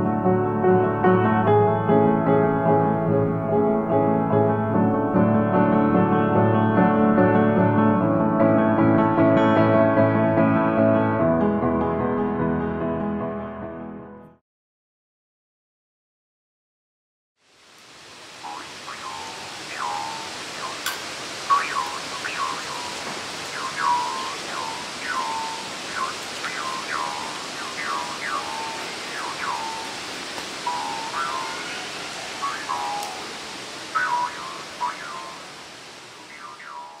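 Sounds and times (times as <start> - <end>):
hiss of rushing water: 17.4 - 37.0
bird chirps falling in pitch: 18.4 - 20.8, 21.5 - 30.0, 30.6 - 35.5, 36.2 - 37.0.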